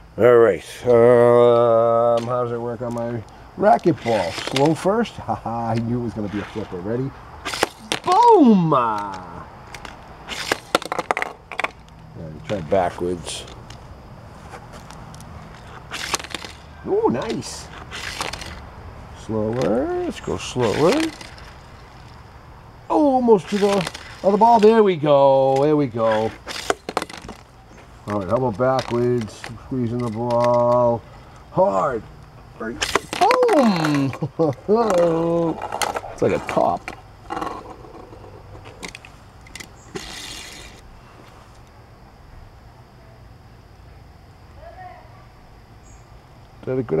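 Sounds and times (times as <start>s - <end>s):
toy car wheels rolling: 3.8s - 4.8s, 7.5s - 11.9s, 15.6s - 18.6s, 19.3s - 22.1s, 22.9s - 24.8s, 25.4s - 27.4s, 32.8s - 40.8s
toy car rolling on tabletop: 17.2s - 18.6s, 19.6s - 22.0s, 23.4s - 24.8s, 34.8s - 40.8s.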